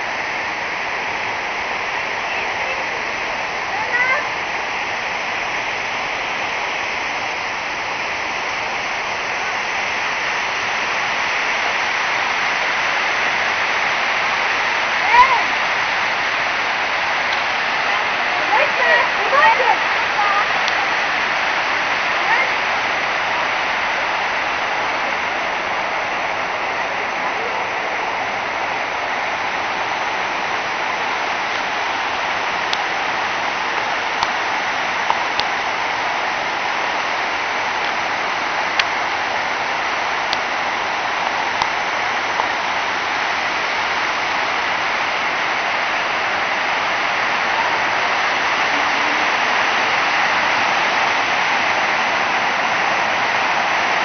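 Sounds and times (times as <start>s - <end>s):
fountain water splashing: 0.0s - 54.0s.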